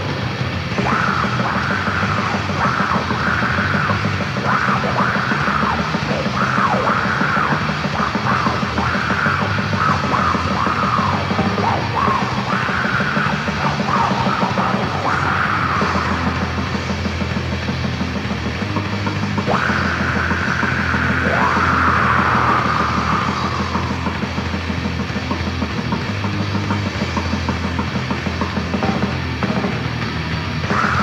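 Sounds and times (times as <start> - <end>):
black metal music: 0.0 - 31.0.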